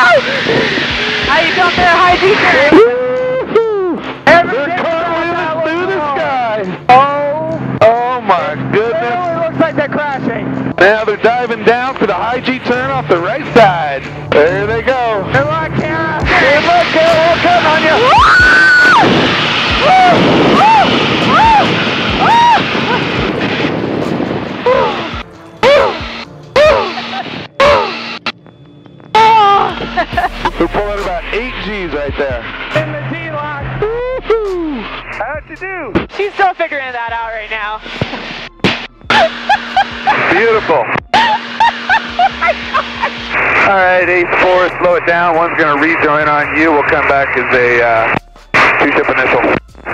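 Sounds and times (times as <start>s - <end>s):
background music: 0.0s - 49.9s
woman giggling and squealing: 39.1s - 40.2s, 41.2s - 43.2s.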